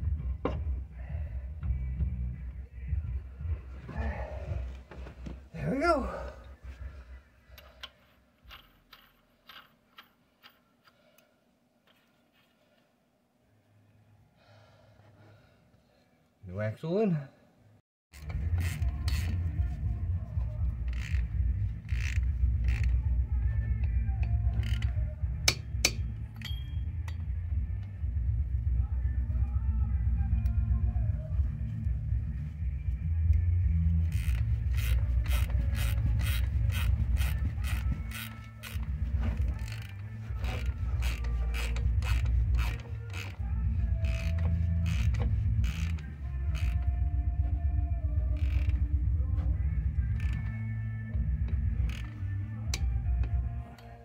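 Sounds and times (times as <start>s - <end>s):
steady low hum: 0.0s - 9.6s, 18.2s - 54.0s
ratchet wrench clicking: 7.6s - 11.0s, 18.2s - 19.6s, 20.6s - 27.3s, 34.1s - 46.9s, 48.4s - 48.9s, 50.1s - 53.9s.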